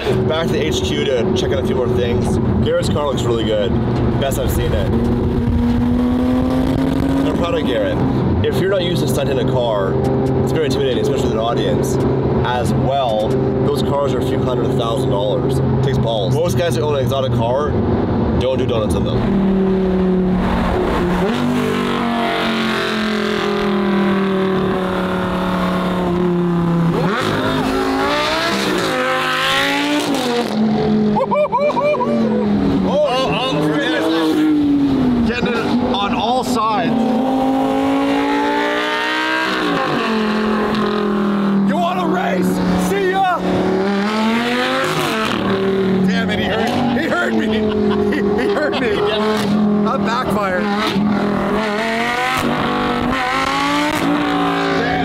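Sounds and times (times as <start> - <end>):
sports car engines revving: 0.0 - 55.0.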